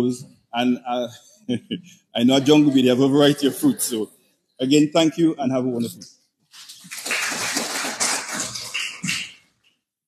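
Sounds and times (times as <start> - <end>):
audience applauding: 6.6 - 9.4.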